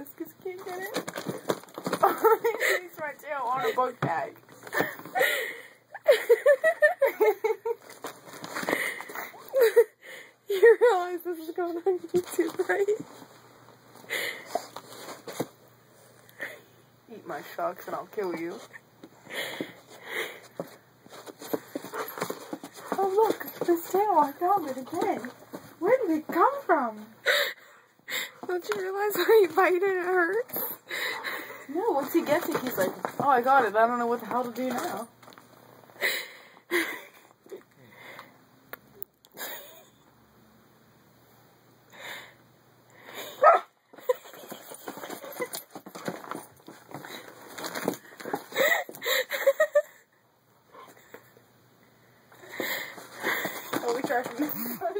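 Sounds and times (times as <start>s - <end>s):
puppy paws clicking and scuffing: 0.2s - 5.3s, 7.1s - 9.6s, 11.1s - 15.6s, 17.4s - 26.8s, 28.4s - 35.5s, 43.4s - 49.7s, 52.4s - 54.9s.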